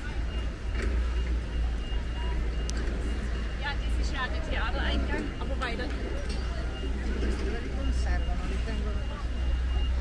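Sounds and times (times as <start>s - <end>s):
passers-by's voices: 0.0s - 10.0s.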